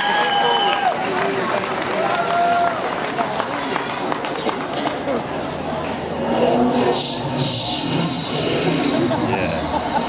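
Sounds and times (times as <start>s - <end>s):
audience cheering and shouting: 0.0s - 3.0s.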